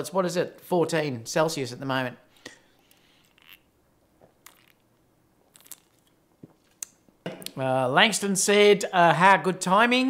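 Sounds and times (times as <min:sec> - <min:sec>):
person sipping and swallowing: 0:02.9 - 0:07.6.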